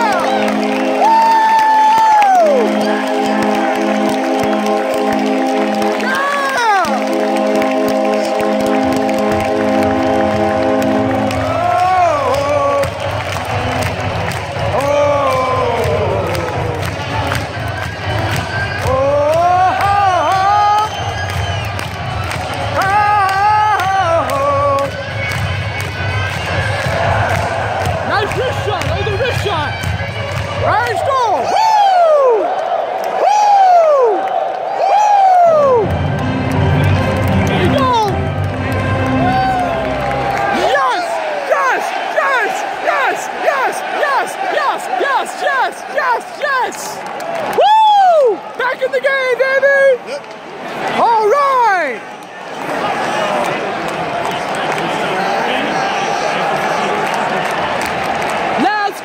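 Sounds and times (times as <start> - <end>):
music over public-address system: 0.0 - 31.4, 35.6 - 40.6
arena crowd noise: 0.0 - 59.0.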